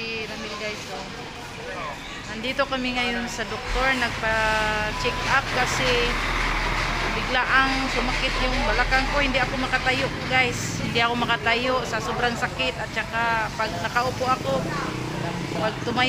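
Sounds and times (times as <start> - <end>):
woman talking: 0.0 - 1.1, 2.2 - 6.2, 7.1 - 15.0, 15.6 - 16.0
motor vehicle rumbling by: 0.4 - 16.0.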